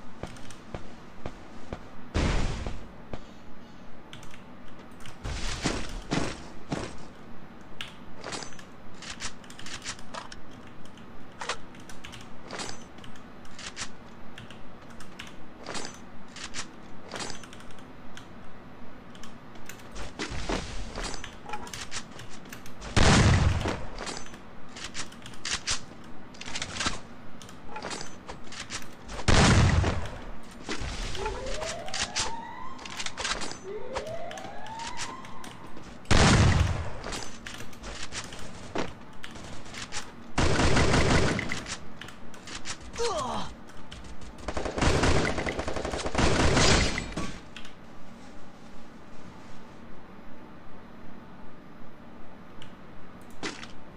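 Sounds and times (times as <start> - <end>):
video game gunfire: 0.7 - 3.0, 22.8 - 27.1, 27.7 - 41.8, 44.0 - 47.6
loud explosions: 22.9 - 23.9, 29.2 - 30.2, 36.1 - 37.0.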